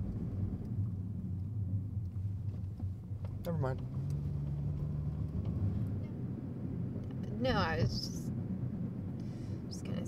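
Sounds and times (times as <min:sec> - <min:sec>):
car engine hum: 0:00.0 - 0:10.0
road noise: 0:00.0 - 0:10.0.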